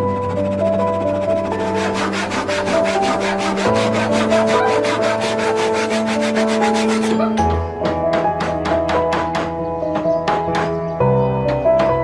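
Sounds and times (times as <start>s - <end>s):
hand saw cutting wood: 0.0s - 7.4s
music with long held notes: 0.0s - 12.0s.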